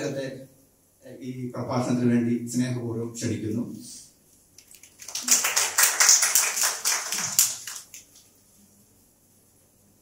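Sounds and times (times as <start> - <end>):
audience applauding: 5.0 - 8.0.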